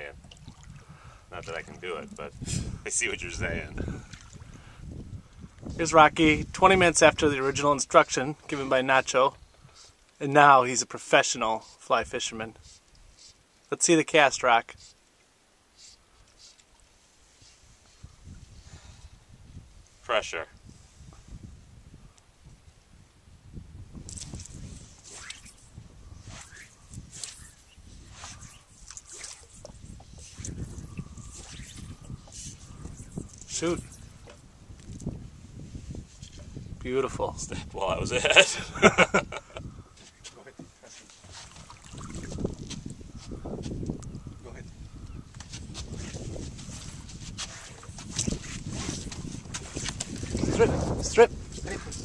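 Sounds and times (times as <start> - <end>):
wind rumble on microphone: 0.0 - 8.4, 17.4 - 40.4, 41.2 - 52.0
small water splashes: 0.2 - 1.8, 4.0 - 4.6, 26.5 - 32.6, 41.4 - 42.4
fly rod swishing through air: 24.1 - 34.5, 45.4 - 51.0.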